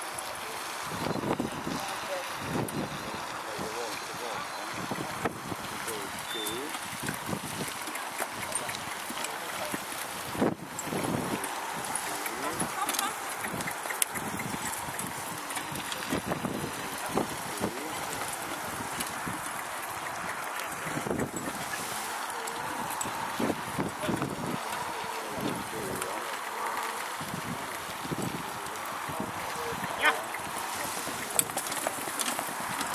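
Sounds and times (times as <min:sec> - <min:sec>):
indistinct voices: 0:00.0 - 0:32.9
wind on microphone: 0:00.3 - 0:32.9
horse hoofbeats: 0:05.5 - 0:32.9.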